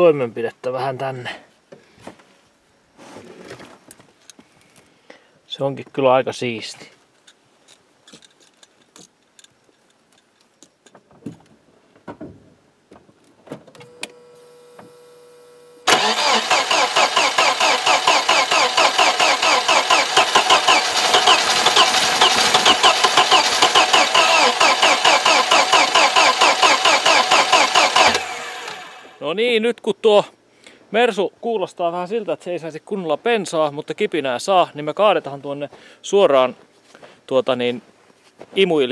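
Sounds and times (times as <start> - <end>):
car engine cranking on starter: 15.8 - 29.2.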